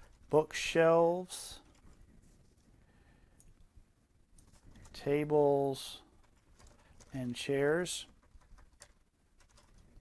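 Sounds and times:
keyboard keystrokes: 0:06.2 - 0:07.1, 0:08.1 - 0:09.8.

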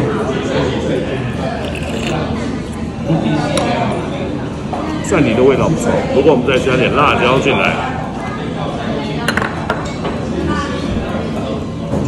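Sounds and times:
chopsticks clinking on ceramic dishes: 0:01.6 - 0:02.2.

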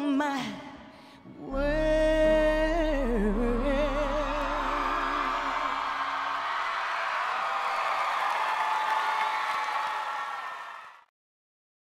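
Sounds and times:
audience cheering and applauding: 0:04.0 - 0:11.1.

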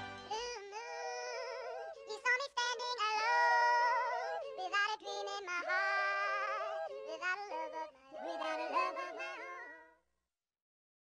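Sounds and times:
music: 0:00.0 - 0:00.5
high-pitched voice singing: 0:00.3 - 0:10.0.

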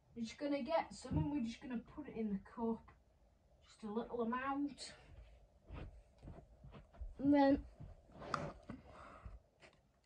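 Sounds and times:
faint rustles of fibre substrate: 0:04.6 - 0:10.0.

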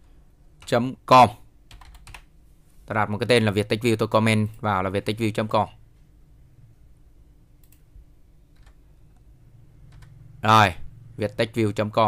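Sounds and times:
low room hum: 0:00.0 - 0:12.0
faint computer clicks: 0:07.6 - 0:07.9.

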